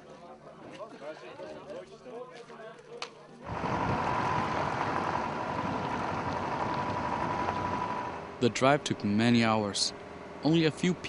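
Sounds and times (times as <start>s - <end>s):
thin steady whine: 3.4s - 11.0s
truck engine and road noise: 3.4s - 11.0s.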